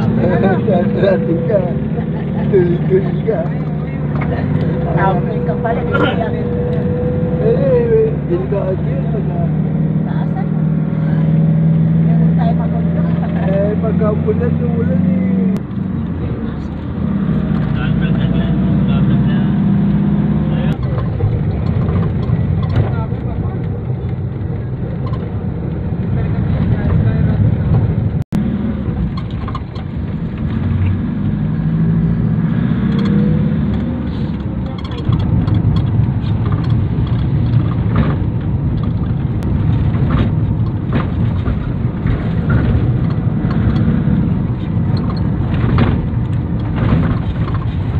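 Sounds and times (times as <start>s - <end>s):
vehicle engine and road noise: 0.0s - 47.9s.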